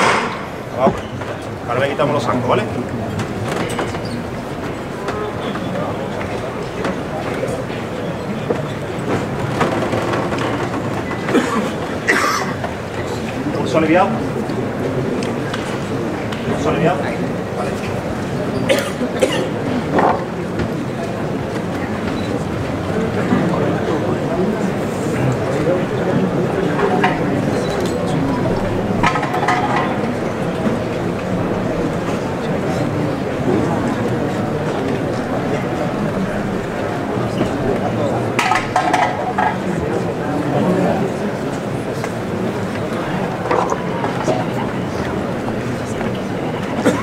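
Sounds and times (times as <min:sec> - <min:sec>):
crowd murmur and shuffling: 0:00.0 - 0:47.0.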